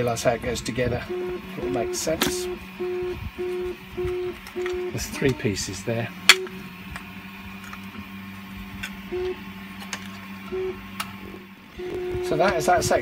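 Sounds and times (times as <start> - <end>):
printer humming: 0.0 - 13.0
stepper motor tone: 0.0 - 13.0
plastic parts clicking: 4.1 - 5.4.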